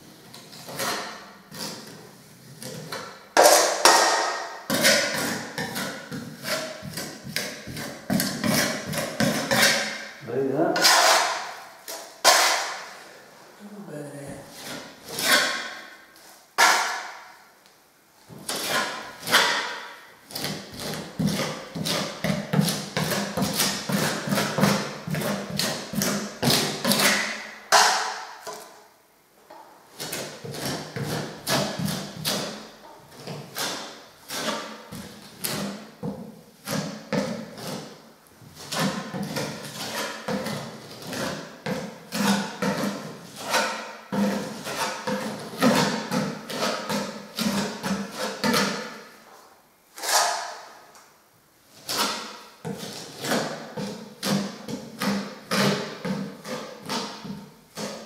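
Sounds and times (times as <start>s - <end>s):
filling knife scraping plaster: 0.3s - 3.0s, 4.7s - 10.0s, 10.7s - 12.8s, 14.3s - 17.0s, 18.4s - 27.3s, 30.0s - 35.8s, 36.6s - 38.0s, 38.6s - 48.9s, 51.8s - 58.0s.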